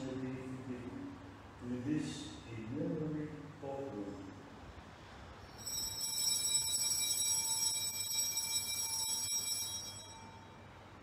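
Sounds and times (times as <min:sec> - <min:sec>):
altar bells ringing: 0:05.5 - 0:11.0.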